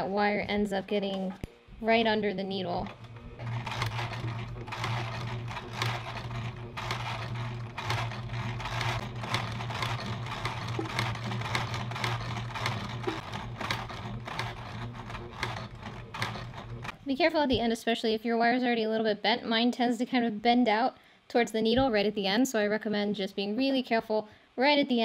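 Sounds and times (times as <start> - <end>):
sewing machine motor hum: 0.0 - 17.0
sewing needle ticking: 2.8 - 17.0.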